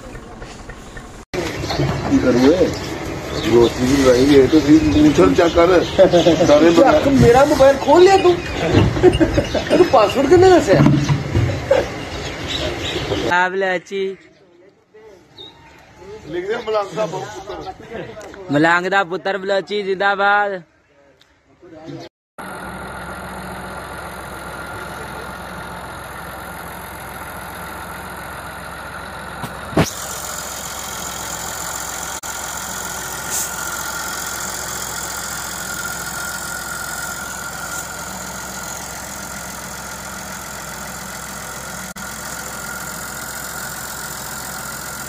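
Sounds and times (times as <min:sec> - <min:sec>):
tractor diesel engine running: 0:00.0 - 0:13.3, 0:22.4 - 0:45.0.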